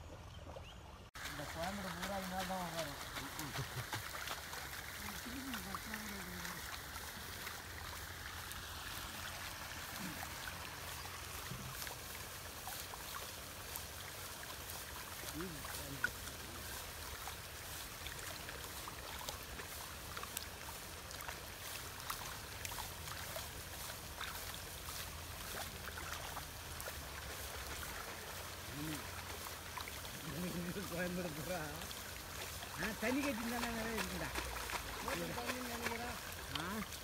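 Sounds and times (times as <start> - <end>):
wet splashing and dripping in mud: 1.2 - 37.0.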